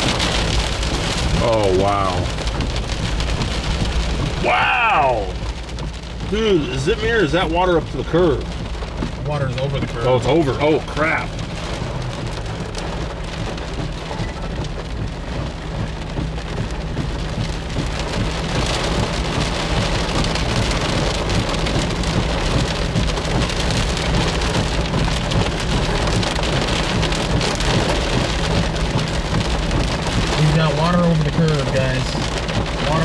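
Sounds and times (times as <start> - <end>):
heavy rain drumming on car: 0.0 - 33.0.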